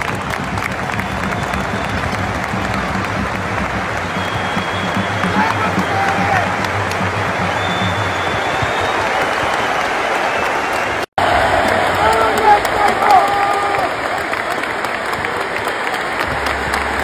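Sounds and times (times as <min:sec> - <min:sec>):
crowd applauding: 0:00.0 - 0:17.0.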